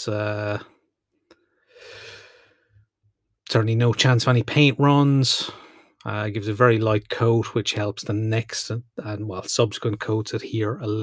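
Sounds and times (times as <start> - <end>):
man breathing in: 1.3 - 2.8, 5.5 - 6.0.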